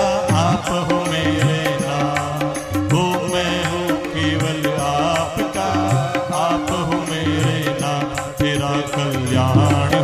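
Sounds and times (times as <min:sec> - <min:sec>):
devotional song melody: 0:00.0 - 0:10.0
light percussion beat: 0:00.0 - 0:10.0.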